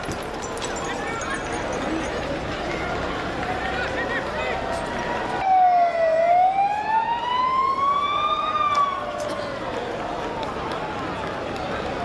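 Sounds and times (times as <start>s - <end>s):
crowd voices: 0.0s - 12.0s
emergency siren wailing: 5.4s - 11.4s.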